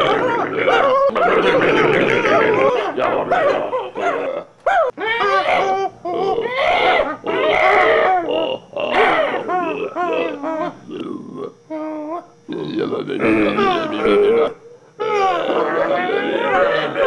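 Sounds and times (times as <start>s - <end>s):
man yelping and howling: 0.0s - 10.8s, 13.2s - 17.0s.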